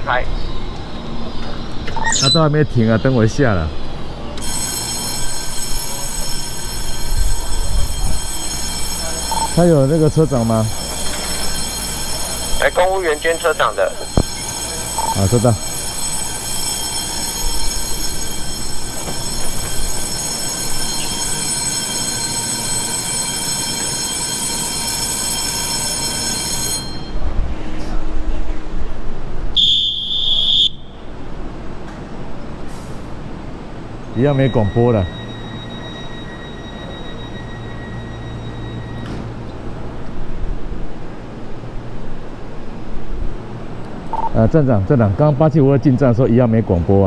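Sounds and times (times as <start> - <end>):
high-pitched whine: 0.0 - 23.0, 34.0 - 40.3
train rumbling: 0.0 - 29.5, 31.0 - 44.1.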